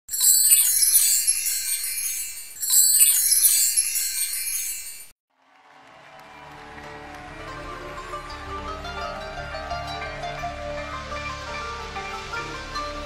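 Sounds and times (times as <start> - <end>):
shimmering bell-like chimes: 0.0 - 5.2.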